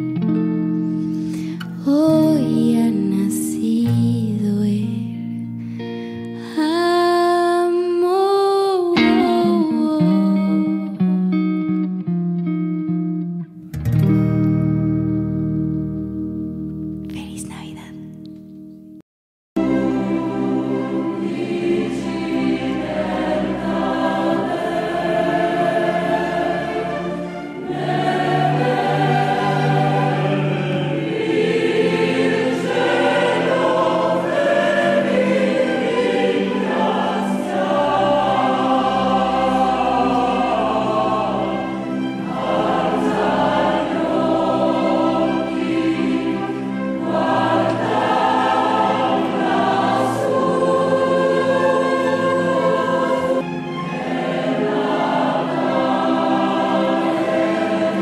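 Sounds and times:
musical accompaniment: 0.0 - 7.4, 8.8 - 19.0, 19.6 - 58.0
choir singing held chords: 19.6 - 58.0.

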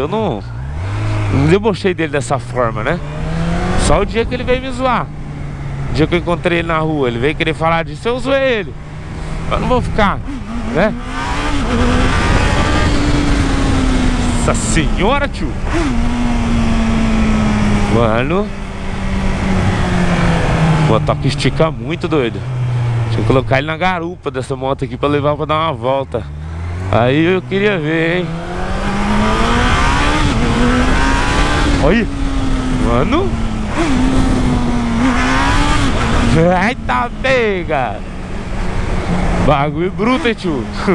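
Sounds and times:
motorcycle engine droning: 0.0 - 40.9
wind rushing past microphone: 9.0 - 21.8
wind noise on microphone: 11.4 - 14.4.

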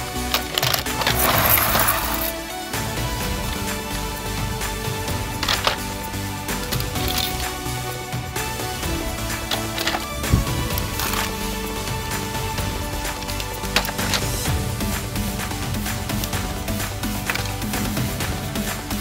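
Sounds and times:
background music: 0.0 - 19.0
plastic toys clattering in basket: 0.3 - 2.4.

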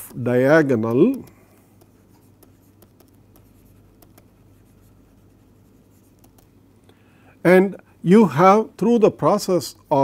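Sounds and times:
stylus tapping on tablet: 0.0 - 4.7, 6.0 - 6.6
low steady hum: 0.0 - 10.0.

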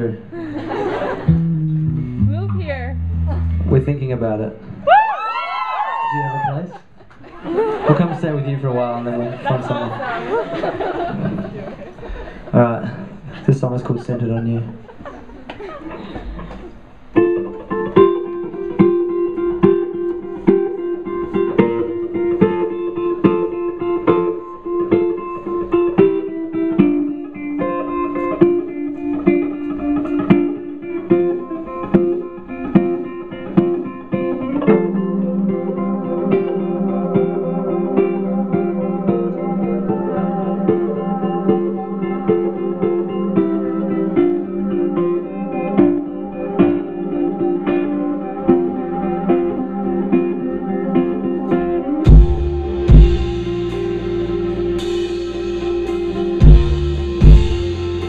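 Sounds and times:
rock band playing live: 0.7 - 4.9, 17.2 - 58.0
electric guitar figure: 1.2 - 4.9, 17.5 - 58.0
steady drum beat: 1.3 - 4.1, 52.1 - 58.0.

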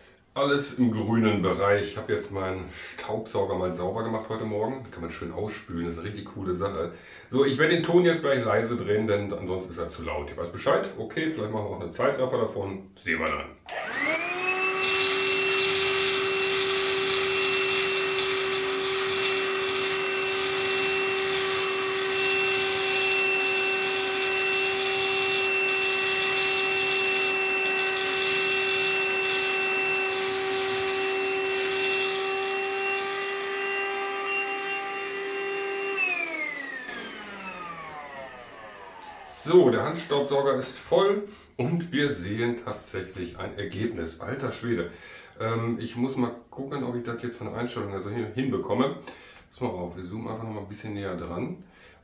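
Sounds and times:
handheld vacuum cleaner whine: 13.7 - 39.5
vacuum sucking grit: 13.7 - 40.1.

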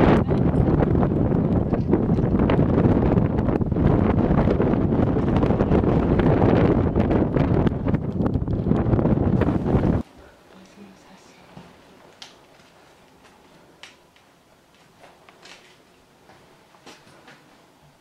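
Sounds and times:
wind blowing over microphone: 0.0 - 10.1.

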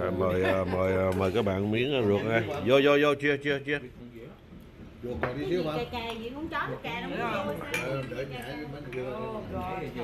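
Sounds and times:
voices around a table: 0.0 - 10.0.

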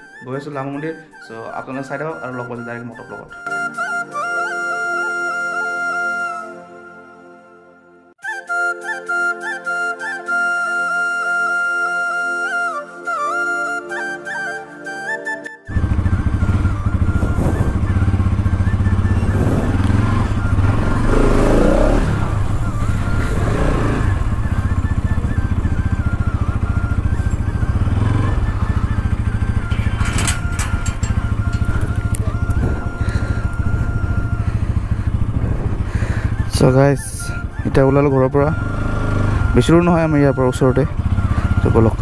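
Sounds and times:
motorcycle engine at low revs: 15.7 - 42.0.

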